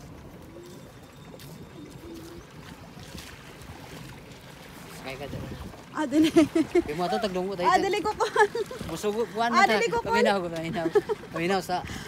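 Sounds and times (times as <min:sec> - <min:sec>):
water lapping against boat hull: 0:00.0 - 0:12.0.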